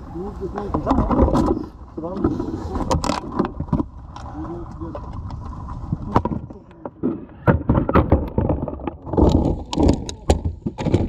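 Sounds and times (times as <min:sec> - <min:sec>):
people talking: 0:00.0 - 0:03.0, 0:04.3 - 0:05.1, 0:06.0 - 0:07.2, 0:08.8 - 0:10.5
plastic bottles knocking: 0:06.0 - 0:11.0.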